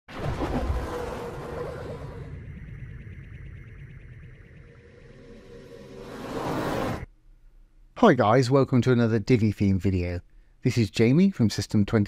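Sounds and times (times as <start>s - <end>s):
faint ringing tail: 2.0s - 6.0s.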